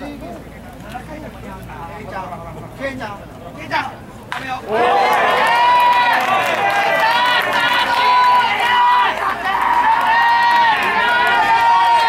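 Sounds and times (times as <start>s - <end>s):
spectators' voices: 0.0s - 12.0s.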